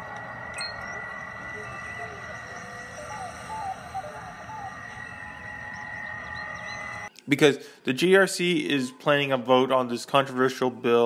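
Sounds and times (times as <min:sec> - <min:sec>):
held high tone: 0:00.0 - 0:07.1.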